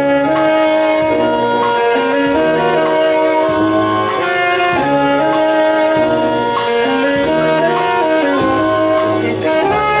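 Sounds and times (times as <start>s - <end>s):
wind band playing: 0.0s - 10.0s.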